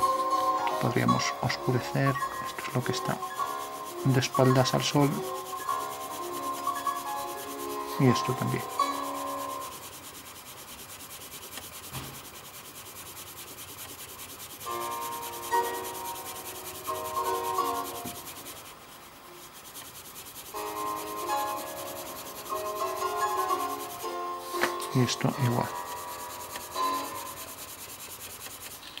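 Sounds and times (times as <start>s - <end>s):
pencil shading on paper: 0.0s - 29.0s.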